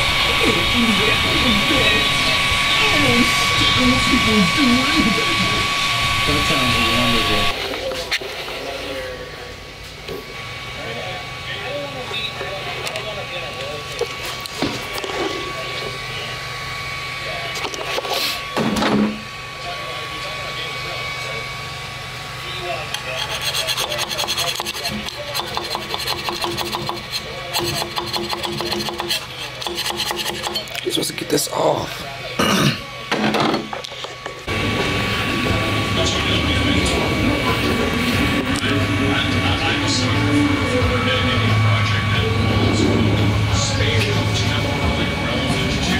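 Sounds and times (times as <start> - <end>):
low hum: 0.0 - 7.6, 34.5 - 45.9
fan and motion noise: 0.0 - 45.9
thin steady whine: 0.0 - 45.9
faint background conversation: 0.2 - 45.9.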